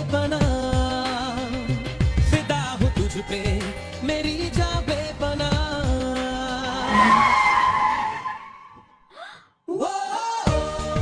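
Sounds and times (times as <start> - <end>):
car tyres squealing: 6.3 - 9.0.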